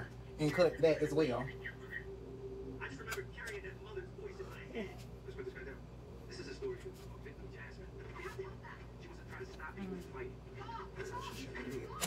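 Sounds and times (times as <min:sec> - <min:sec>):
muffled television talk: 0:00.0 - 0:12.0.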